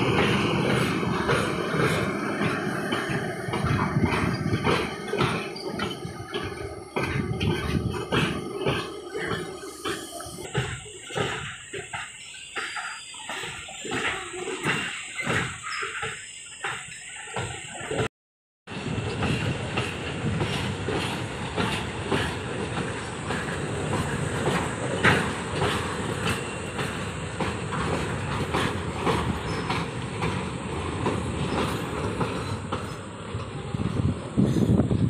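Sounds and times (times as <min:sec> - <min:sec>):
train wheels rumbling on rail: 0:00.0 - 0:18.1, 0:18.7 - 0:35.0
wheels clicking over rail joints: 0:00.0 - 0:18.1, 0:18.7 - 0:35.0.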